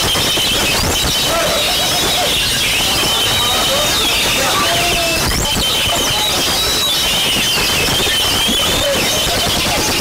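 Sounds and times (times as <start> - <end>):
songbirds singing: 0.0 - 10.0
steady noisy din: 0.0 - 10.0.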